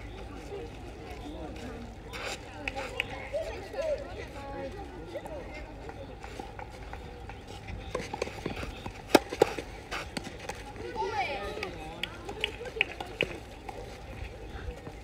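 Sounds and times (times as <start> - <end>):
distant voices: 0.0 - 15.0
tennis ball on clay court: 5.8 - 15.0.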